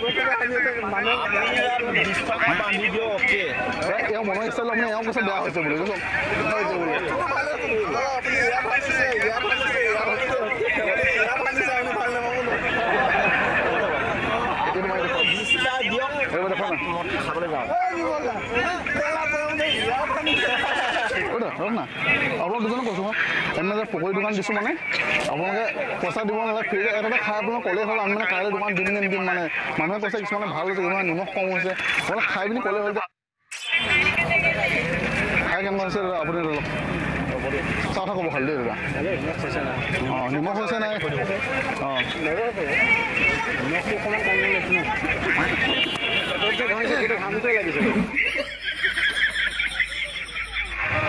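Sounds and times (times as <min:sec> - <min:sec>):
men talking: 0:00.0 - 0:33.1, 0:34.1 - 0:51.0
faint crowd voices: 0:00.0 - 0:51.0
street noise: 0:00.0 - 0:51.0.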